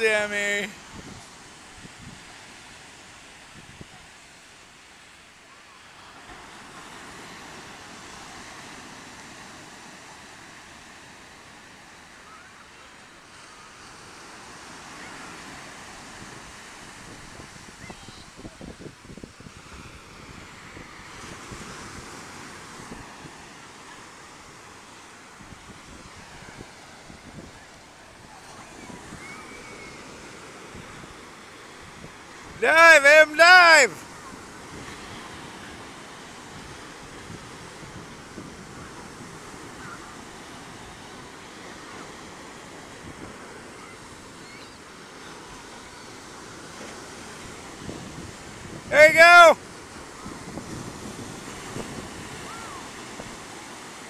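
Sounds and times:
surf breaking on beach: 0:00.0 - 0:54.0.

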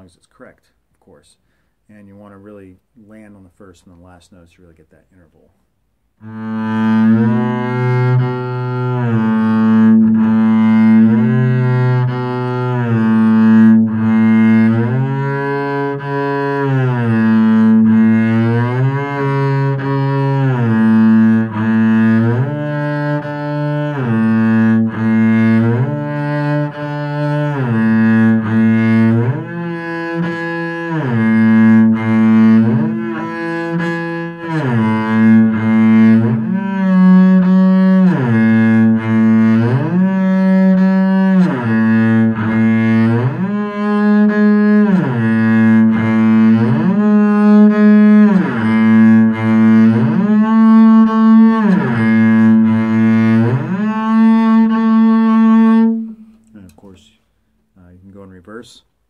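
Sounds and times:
bowed double bass sliding notes: 0:06.2 - 0:56.8.

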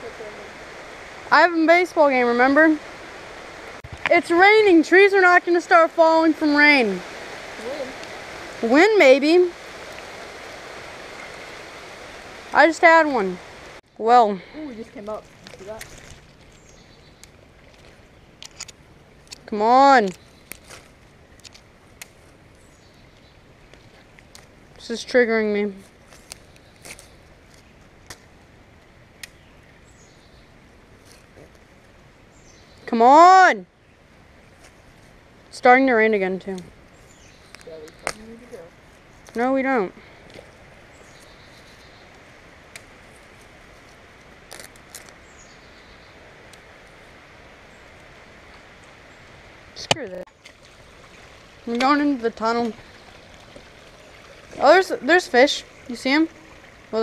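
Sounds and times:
faint steady hiss: 0:00.0 - 0:57.0
light rain: 0:00.0 - 0:57.0
leaves brushing against camera: 0:14.9 - 0:16.7, 0:20.1 - 0:22.4, 0:40.4 - 0:45.6
leafy branches clicking and snapping: 0:15.0 - 0:16.6, 0:37.5 - 0:38.5, 0:42.6 - 0:45.3.

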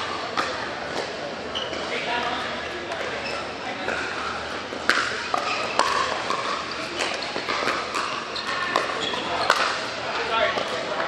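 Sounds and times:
paddles popping against ball: 0:04.8 - 0:09.8.

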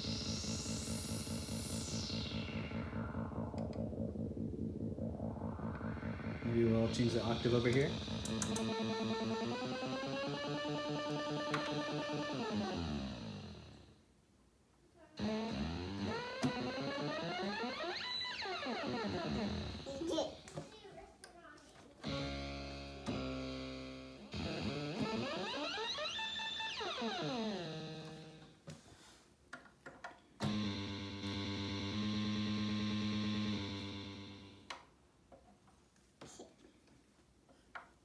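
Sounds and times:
analog synthesizer sweeping notes: 0:00.0 - 0:14.0, 0:15.2 - 0:20.4, 0:22.0 - 0:28.6, 0:30.4 - 0:34.7.

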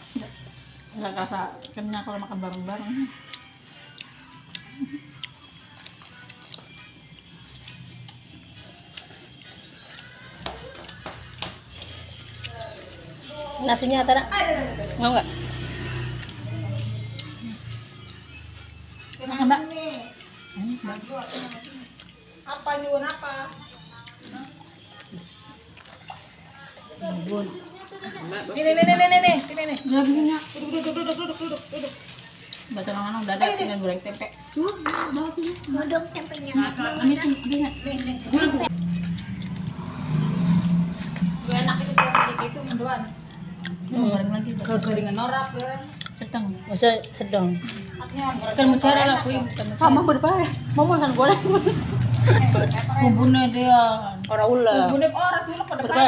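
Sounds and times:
indistinct voices talking: 0:32.6 - 0:56.0.

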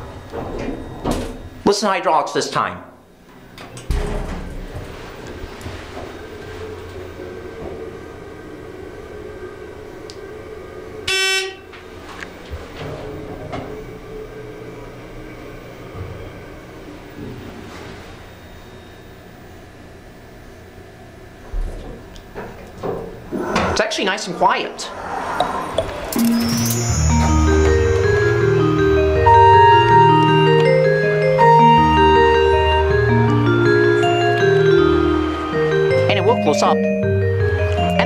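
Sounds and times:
elevator hydraulic hum: 0:00.0 - 0:01.7, 0:03.0 - 0:38.0
elevator door knocks: 0:03.7 - 0:06.0
loud buzzy tone: 0:03.8 - 0:12.1.

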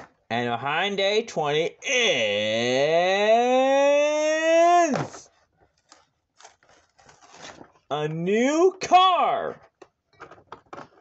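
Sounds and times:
cardboard scraping and tearing: 0:05.8 - 0:07.8.

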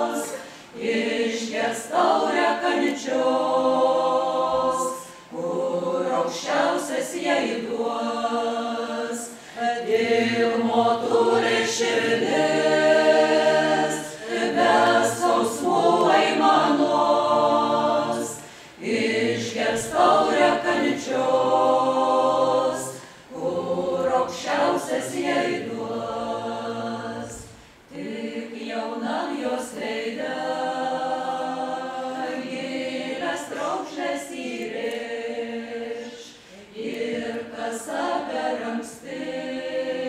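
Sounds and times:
folk ensemble singing: 0:00.0 - 0:40.0.

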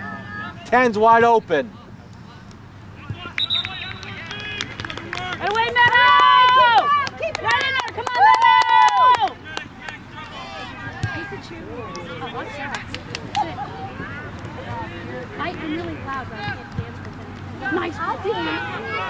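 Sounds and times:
faint calls from players: 0:02.1 - 0:19.0
long drawn-out shouts: 0:05.2 - 0:11.4, 0:17.6 - 0:19.0.

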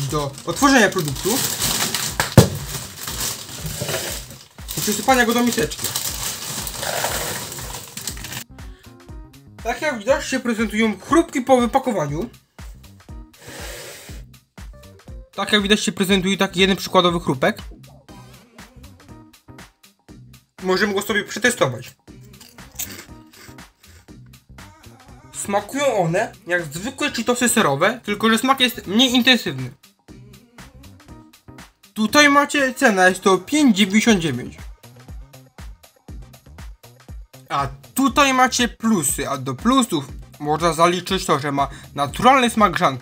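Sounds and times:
plastic snack bag crinkling: 0:00.0 - 0:08.4
background music: 0:00.0 - 0:43.0.

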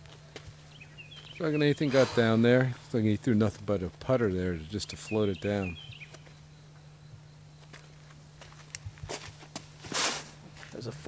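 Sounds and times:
light footsteps on dirt: 0:00.0 - 0:02.9, 0:05.8 - 0:06.5, 0:07.6 - 0:11.0.

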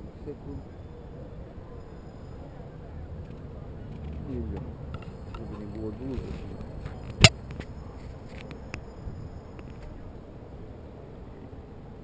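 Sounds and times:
passers-by voices: 0:00.0 - 0:12.0.

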